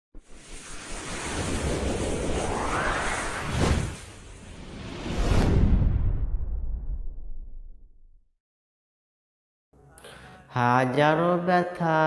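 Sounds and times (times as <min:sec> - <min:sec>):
whoosh over low rumble: 0:00.2 - 0:08.2.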